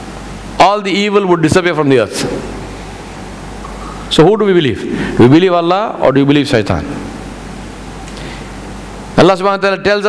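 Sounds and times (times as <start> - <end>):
faint low hum: 0.0 - 9.6
background hiss: 0.0 - 10.0
man speaking: 0.6 - 2.5, 4.1 - 7.1.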